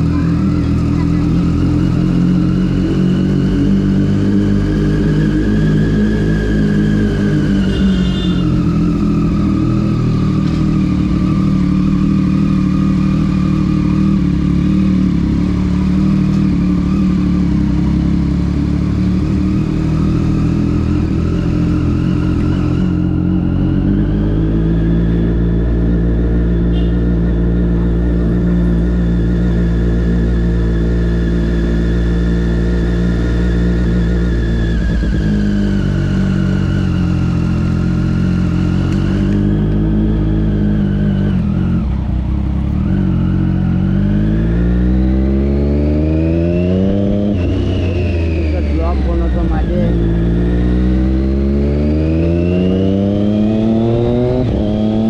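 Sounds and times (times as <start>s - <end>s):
motorcycle engine running: 0.0s - 55.0s.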